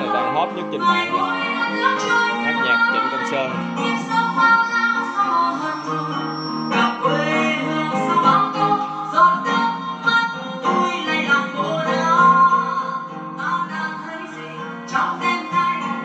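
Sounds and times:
acoustic guitar: 0.0 - 16.0
person singing: 0.0 - 16.0.

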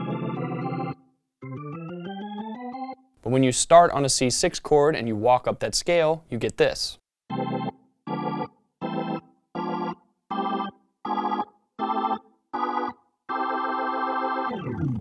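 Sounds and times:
organ block chords: 0.0 - 3.0, 7.3 - 15.0.

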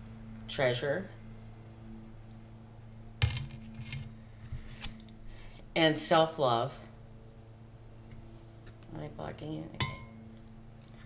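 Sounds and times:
cards clicking and rubbing: 4.4 - 5.1.

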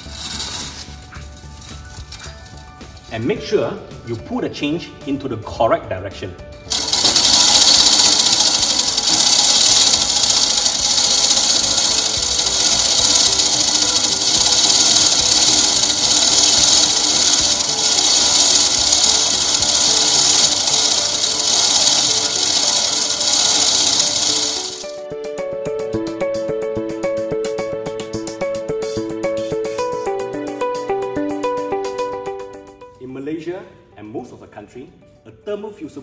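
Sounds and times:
steel chain rattling: 0.0 - 3.3, 6.7 - 24.8
background music: 0.0 - 36.0.

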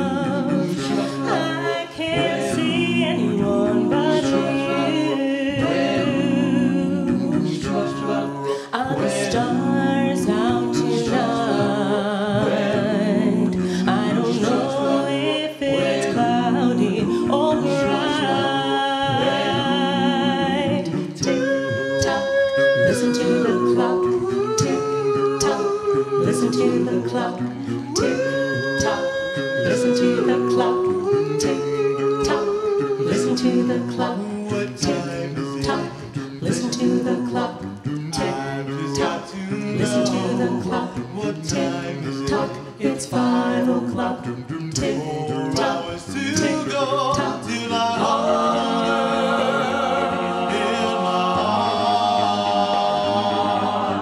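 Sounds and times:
a cappella group singing harmony: 0.0 - 54.0.

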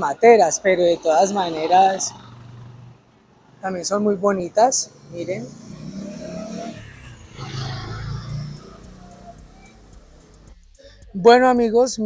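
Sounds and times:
vehicle engine passing: 0.0 - 11.1.

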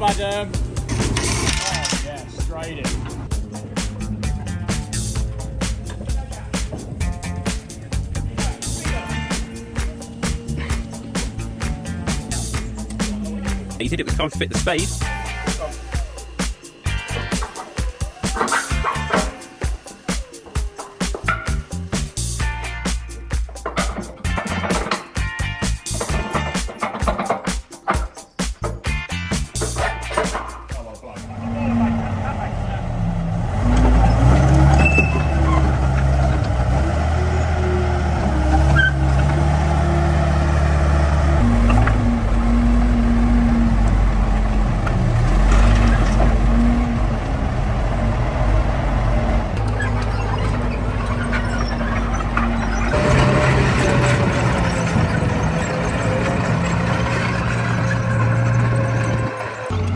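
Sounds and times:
tank engine running: 0.0 - 17.6, 31.2 - 59.9
voices: 1.5 - 24.8, 29.6 - 59.9.

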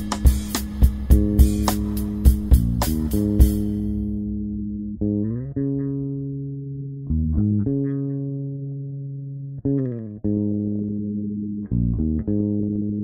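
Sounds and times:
bass guitar and guitar low notes: 0.0 - 13.0.

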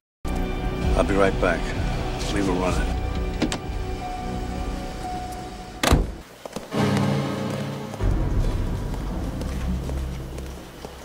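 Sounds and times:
quiet film music: 0.3 - 11.0
car door shutting: 5.8 - 6.2.

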